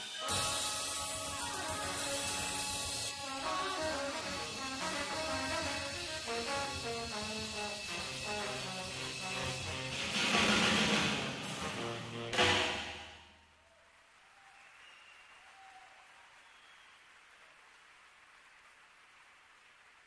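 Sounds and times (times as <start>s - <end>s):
jazz quartet playing: 0.2s - 12.8s.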